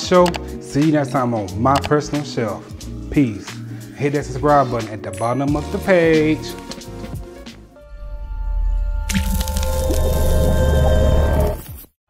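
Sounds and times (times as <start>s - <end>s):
deep bass drone: 7.8s - 11.6s
dense wash of sound: 8.2s - 11.6s
wet splat: 9.1s - 10.4s.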